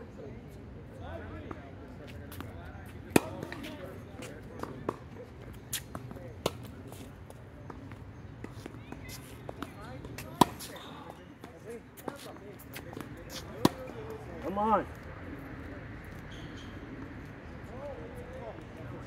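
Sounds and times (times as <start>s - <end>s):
racket hitting tennis ball: 3.1s - 5.0s, 8.5s - 13.9s.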